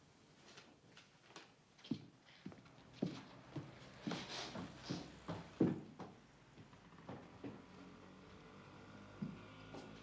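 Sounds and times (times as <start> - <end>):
child's footsteps on stairs: 1.8 - 7.7, 9.2 - 10.0.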